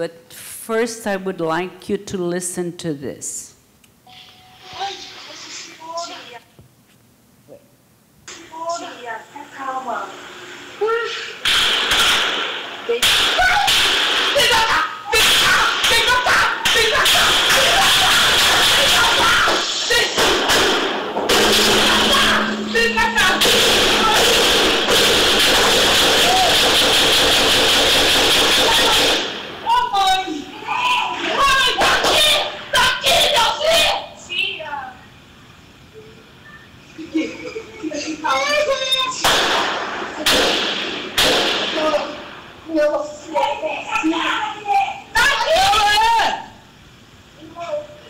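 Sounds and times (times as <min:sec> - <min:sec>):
distorted gunfire recording: 0:11.4 - 0:14.4, 0:20.2 - 0:29.6
echoing gunshots: 0:11.4 - 0:14.4, 0:20.2 - 0:29.6, 0:39.3 - 0:41.8
people shouting: 0:13.3 - 0:20.3, 0:21.3 - 0:27.0, 0:28.4 - 0:34.0.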